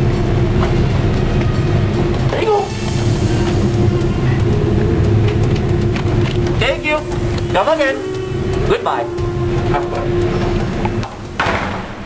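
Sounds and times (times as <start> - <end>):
machinery rumbling and humming: 0.0 - 12.0.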